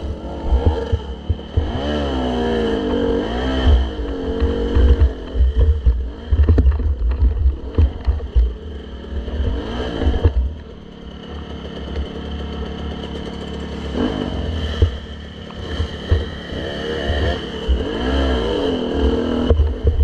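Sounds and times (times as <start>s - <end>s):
dirt bike engines revving: 0.0s - 20.0s.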